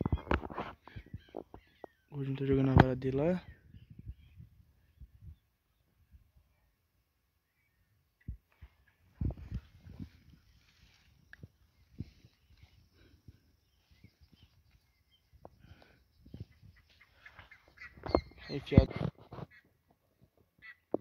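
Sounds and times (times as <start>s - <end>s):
footsteps on muddy grass: 8.6s - 15.0s.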